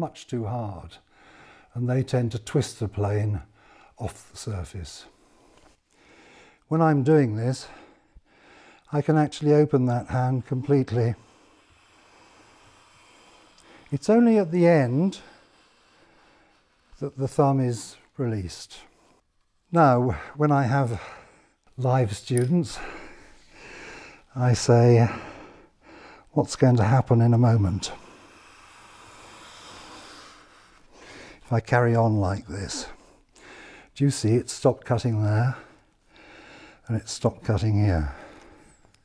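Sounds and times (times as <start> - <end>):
hand plane shaving wood: 14.1 - 17.4.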